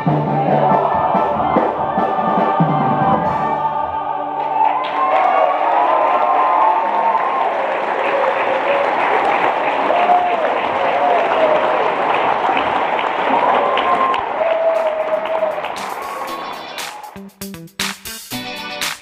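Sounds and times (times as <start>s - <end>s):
audience applauding: 4.4s - 17.2s.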